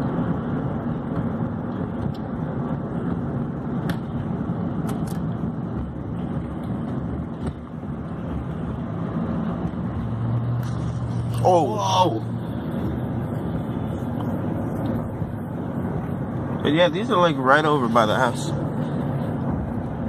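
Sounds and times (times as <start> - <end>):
road and engine noise in car: 0.0 - 20.0.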